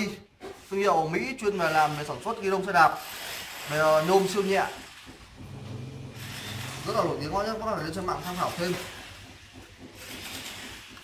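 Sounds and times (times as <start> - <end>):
room hum: 4.7 - 10.2.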